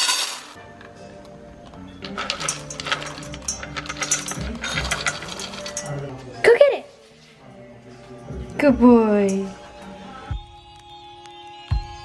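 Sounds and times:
dog kibble rattling in metal bowl: 2.0s - 6.2s.

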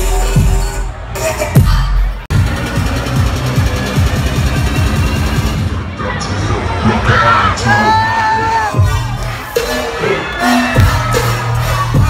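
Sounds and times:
loud dubstep music: 0.0s - 12.0s.

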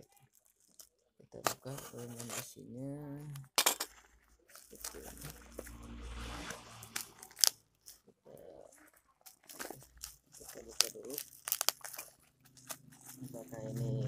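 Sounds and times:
plastic packaging crinkling and tearing: 0.0s - 5.4s, 8.7s - 14.0s.

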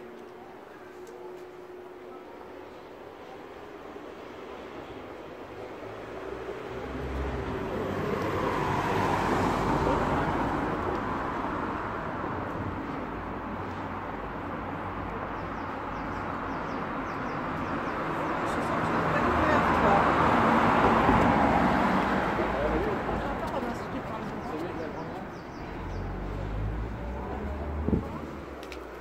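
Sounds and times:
car passing: 4.1s - 15.0s, 17.6s - 29.0s
vehicle approaching: 4.4s - 13.8s, 17.8s - 29.0s.

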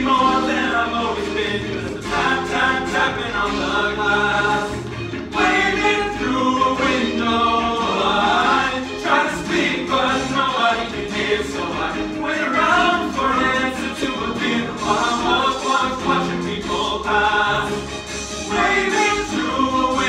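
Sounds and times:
male ensemble singing in harmony: 0.0s - 20.0s
musical accompaniment with bass line: 0.0s - 20.0s.

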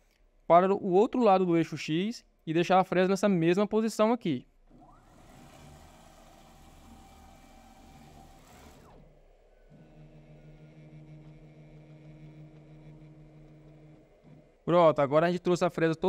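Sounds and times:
gantry motor whirring: 4.7s - 14.9s
low machine hum: 4.7s - 15.2s.

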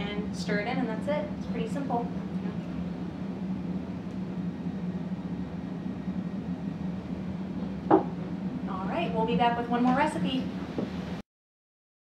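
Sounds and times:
low hum with hiss: 0.0s - 11.2s
sharp knock: 7.9s - 8.2s.

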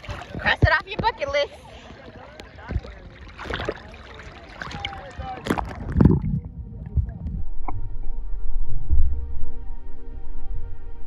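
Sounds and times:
sea water lapping and splashing: 0.0s - 7.2s.

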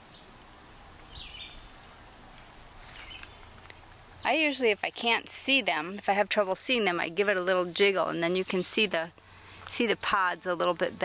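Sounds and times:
insects trilling: 0.0s - 11.0s
outdoor background noise: 0.0s - 11.0s.

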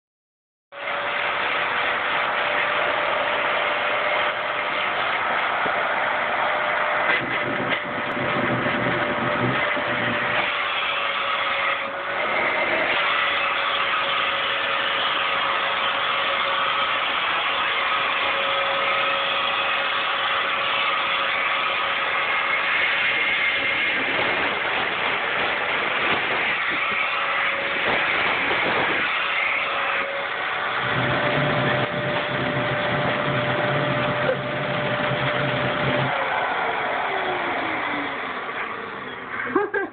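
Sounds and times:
stick vacuum cleaner whining: 0.8s - 39.9s.

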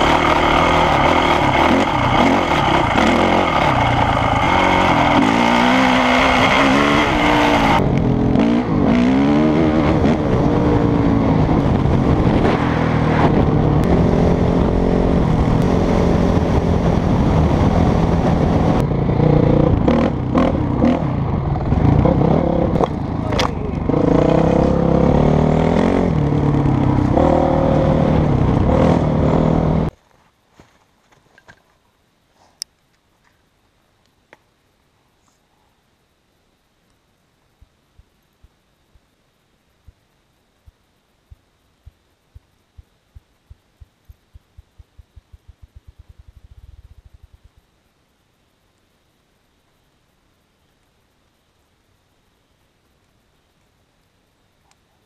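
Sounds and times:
dirt bike engine revving: 0.0s - 29.9s
wind rushing over microphone: 9.5s - 18.9s.

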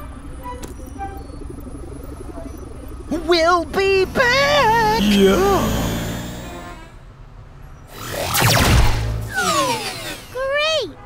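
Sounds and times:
voice-like rise and fall: 1.7s - 7.0s, 7.9s - 10.6s
cartoon whoosh: 7.9s - 10.4s.

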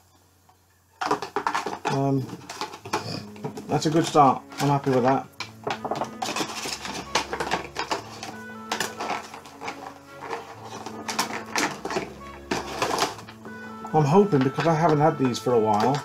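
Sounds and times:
plastic packaging crinkling: 1.0s - 16.0s.

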